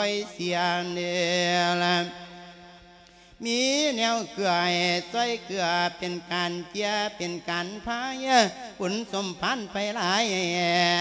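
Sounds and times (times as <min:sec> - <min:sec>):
monk chanting into a microphone: 0:00.0 - 0:11.0.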